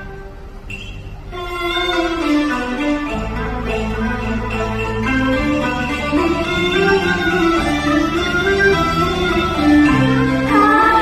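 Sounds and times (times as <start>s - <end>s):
traditional instrumental ensemble playing: 0.0s - 11.0s.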